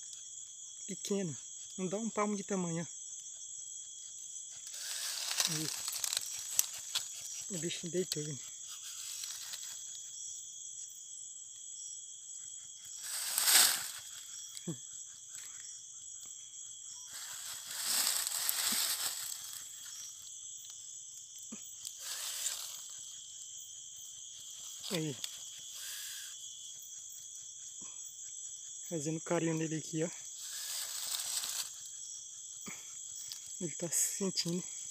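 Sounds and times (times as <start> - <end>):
night insect chorus: 0.0 - 34.9
dry leaves rustling and crunching: 4.7 - 7.2, 13.0 - 14.2, 17.1 - 19.9, 22.0 - 22.9, 30.4 - 31.7.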